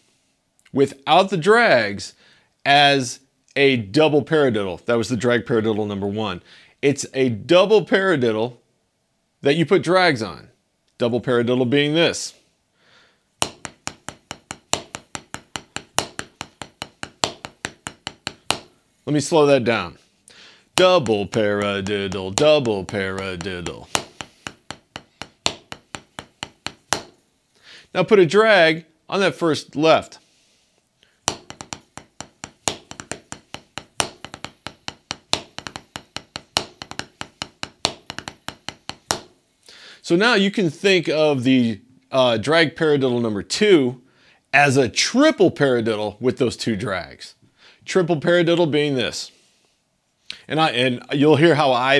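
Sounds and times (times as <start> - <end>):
drumsticks on rubber practice pad: 13.4 - 18.8, 20.7 - 27.3, 31.1 - 39.4.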